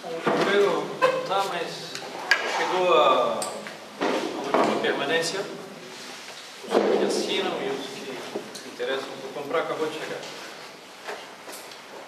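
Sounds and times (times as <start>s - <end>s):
man speaking: 0.0s - 3.7s, 4.4s - 5.8s, 6.9s - 10.4s.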